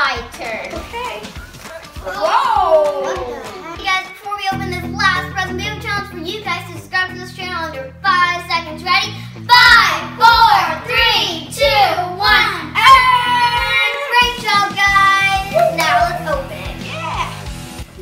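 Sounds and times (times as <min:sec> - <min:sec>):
backing music with a beat: 0:00.0 - 0:06.0, 0:12.2 - 0:18.0.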